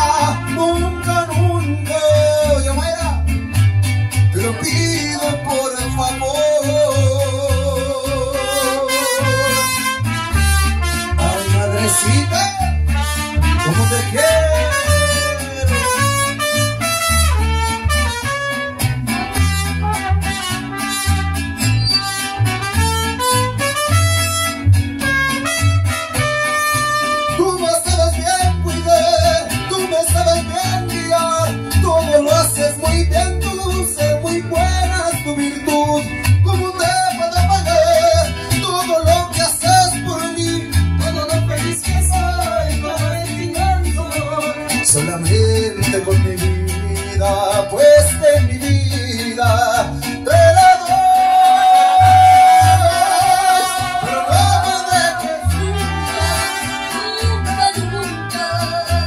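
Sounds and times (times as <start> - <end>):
mariachi band playing: 0.0 - 59.0
plucked bass: 0.0 - 59.0
person singing into a microphone: 4.4 - 9.7, 11.2 - 12.9, 13.6 - 16.2, 27.4 - 59.0.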